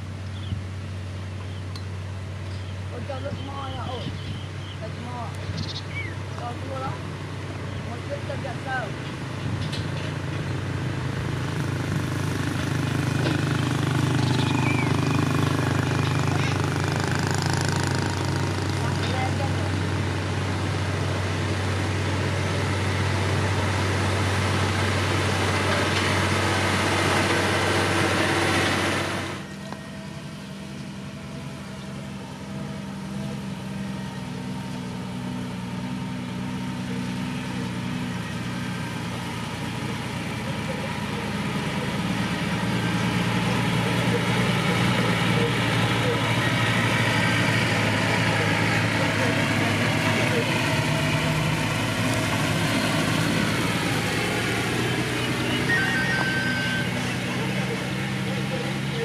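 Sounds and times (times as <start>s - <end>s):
diesel engine running: 0.0s - 59.0s
truck engine driving: 0.0s - 59.0s.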